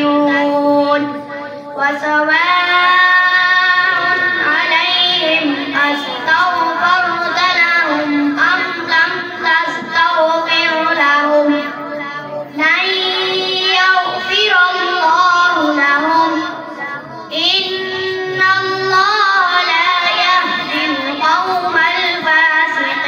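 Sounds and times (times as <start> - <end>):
boy chanting into a microphone: 0.0 - 23.0.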